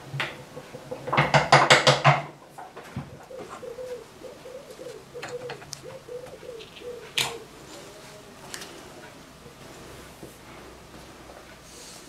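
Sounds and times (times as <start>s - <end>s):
bird cooing: 0.2s - 1.1s, 3.0s - 8.3s.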